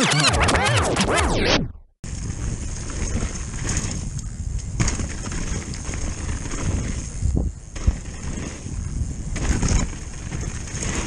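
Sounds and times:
mountain bike rattling: 0:02.0 - 0:11.0
tyres on dirt: 0:02.0 - 0:11.0
wind rumble on microphone: 0:02.0 - 0:11.0.

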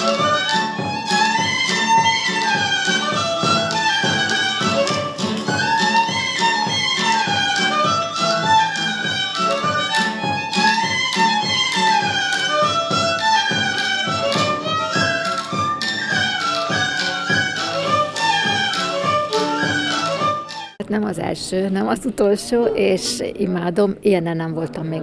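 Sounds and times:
drum beat: 0:00.0 - 0:20.7
fiddle melody: 0:00.0 - 0:20.8
folk dance music: 0:00.0 - 0:20.8.

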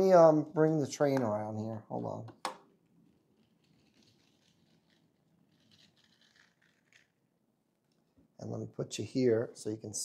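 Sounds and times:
plastic toy train rustling: 0:03.4 - 0:07.1.

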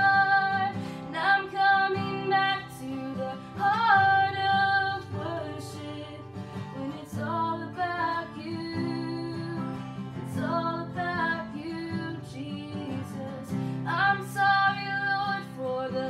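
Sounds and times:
strummed acoustic guitar: 0:00.0 - 0:16.0
woman singing: 0:00.0 - 0:16.0.

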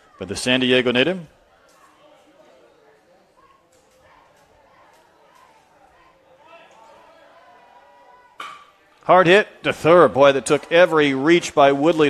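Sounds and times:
faint crowd murmur: 0:00.0 - 0:12.0.

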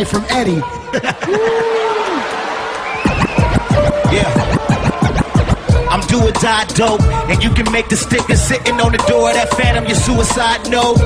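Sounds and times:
turntable scratching: 0:03.0 - 0:08.6
rapid bass drum beat: 0:03.0 - 0:11.0.

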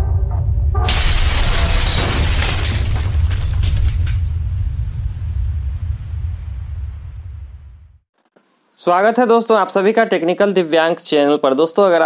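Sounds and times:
music: 0:00.0 - 0:00.9
deep rumble: 0:00.0 - 0:08.0
loud shattering crash: 0:00.8 - 0:05.0.

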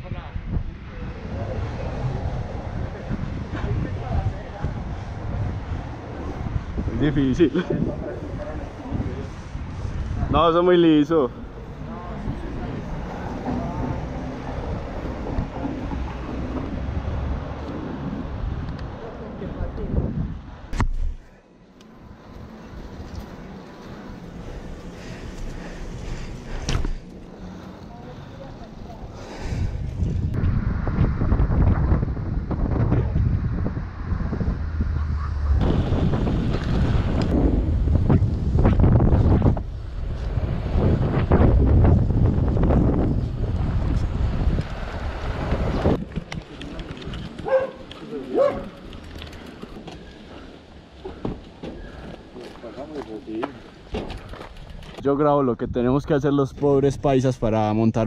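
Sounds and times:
wind buffeting microphone: 0:00.0 - 0:21.2, 0:22.0 - 0:58.0
bike tyres on pavement: 0:00.1 - 0:55.2.

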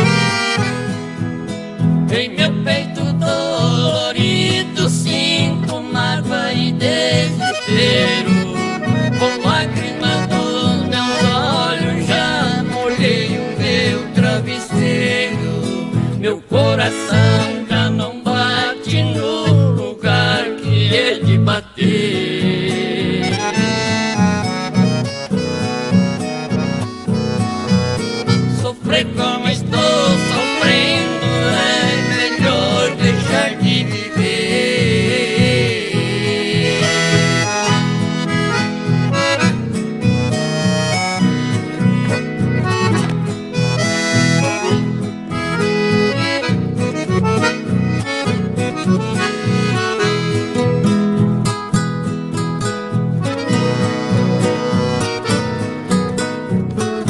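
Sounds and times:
accordion playing: 0:00.0 - 0:57.0
harmonica melody: 0:00.0 - 0:57.0.

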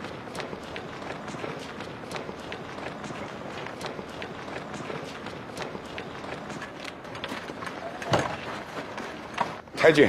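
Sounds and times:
hurried footsteps: 0:00.0 - 0:10.0.

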